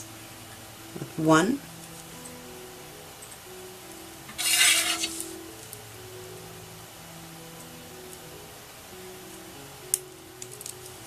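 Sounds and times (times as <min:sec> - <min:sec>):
rustling scrape of handling: 0:04.3 - 0:05.4.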